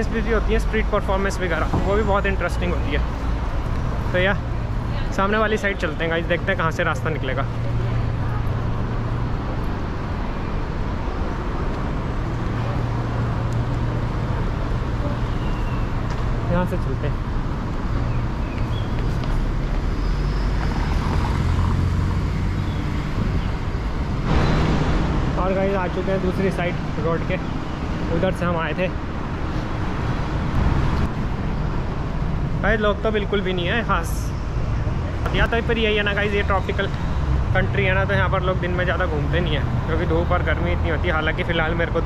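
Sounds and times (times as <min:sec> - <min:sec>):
road traffic: 0:00.0 - 0:42.0.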